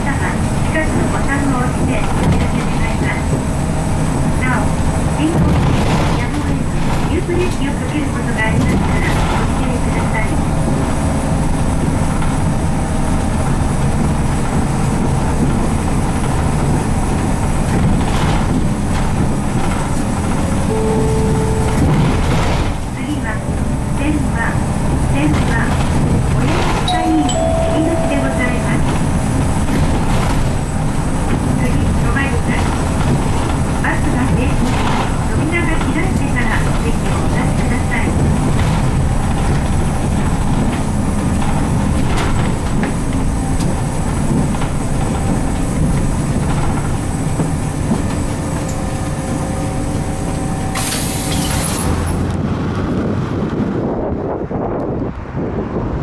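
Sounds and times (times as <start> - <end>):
bus diesel engine running: 0.0 - 56.0
outdoor traffic: 0.0 - 56.0
road noise: 0.0 - 56.0
wind on microphone: 51.8 - 56.0.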